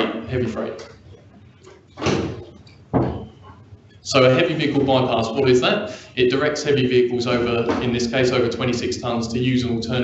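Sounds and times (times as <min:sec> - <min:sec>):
door opening: 0:01.7 - 0:03.6.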